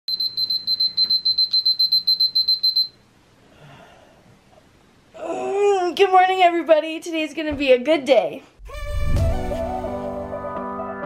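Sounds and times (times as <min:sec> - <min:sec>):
smartphone alarm beeping: 0:00.1 - 0:03.0.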